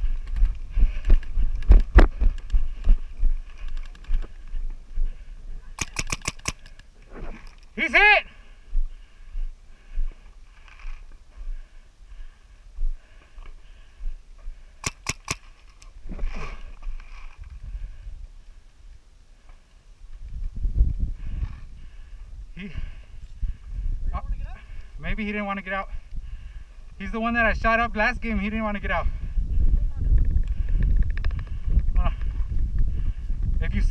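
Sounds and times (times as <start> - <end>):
paintball marker shots: 5.8 - 6.9, 14.8 - 15.6
low rumble on microphone: 20.0 - 25.0, 29.1 - 33.9.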